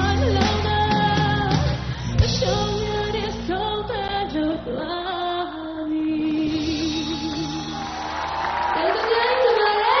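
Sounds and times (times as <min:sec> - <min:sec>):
band accompaniment: 0:00.0 - 0:03.4
woman singing into microphone: 0:00.0 - 0:07.9, 0:08.8 - 0:10.0.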